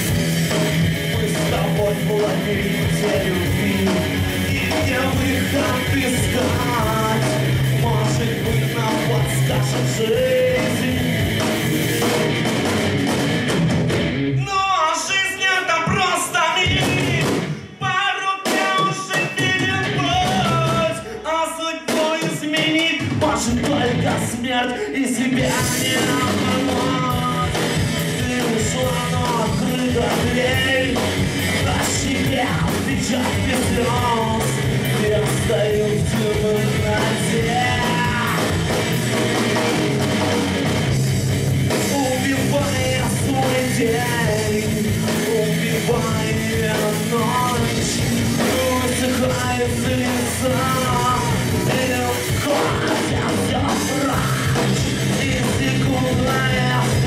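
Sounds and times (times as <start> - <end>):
drum kit beat: 0.0 - 14.6, 15.8 - 57.0
bass guitar: 0.0 - 14.8, 19.4 - 21.1, 23.1 - 57.0
electric guitars: 0.0 - 14.8, 23.2 - 57.0.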